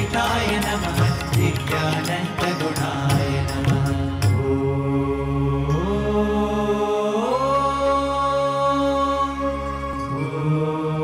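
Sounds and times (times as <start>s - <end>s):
keyboards: 0.0s - 11.0s.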